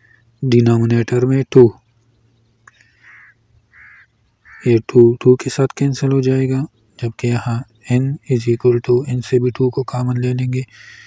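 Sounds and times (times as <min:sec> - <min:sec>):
short bird calls: 0:00.0 - 0:00.4, 0:01.8 - 0:04.8, 0:10.6 - 0:11.0.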